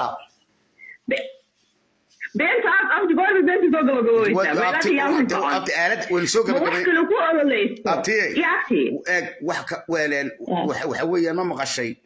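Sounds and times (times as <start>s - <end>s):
person speaking: 0.0s - 2.8s, 4.0s - 12.0s.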